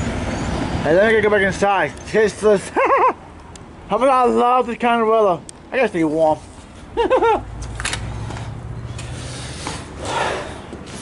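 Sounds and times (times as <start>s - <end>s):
handling and rubbing noise: 6.0s - 6.9s.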